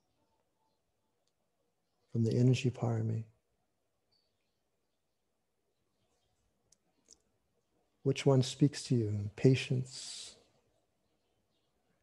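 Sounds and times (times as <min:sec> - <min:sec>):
faint clicks: 0:01.2 - 0:01.4, 0:06.7 - 0:07.3.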